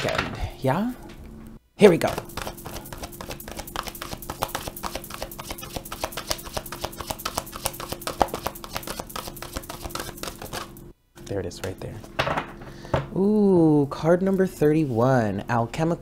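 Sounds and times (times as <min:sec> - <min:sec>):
steady low hum: 0:00.0 - 0:16.0
cards being shuffled: 0:02.0 - 0:10.8.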